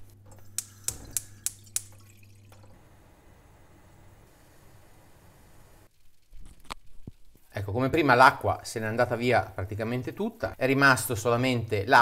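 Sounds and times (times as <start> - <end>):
sharp drips splashing: 0.6 - 2.6
liquid pouring into pan: 0.8 - 2.7.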